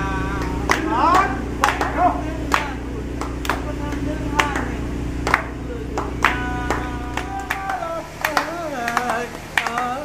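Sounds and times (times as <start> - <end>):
man singing: 0.0 - 10.0
steady low hum: 0.0 - 10.0
hands clapping: 0.4 - 10.0.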